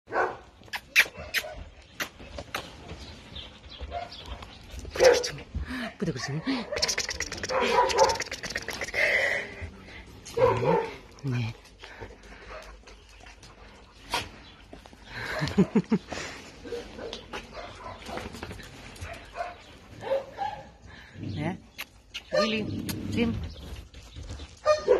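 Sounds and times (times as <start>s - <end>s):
dog barking: 0.1s - 0.4s, 5.0s - 5.4s, 7.5s - 8.2s, 10.4s - 11.0s, 19.1s - 20.7s, 22.3s - 22.6s, 24.6s - 24.9s
dog making soft vocal sounds: 6.5s - 9.6s.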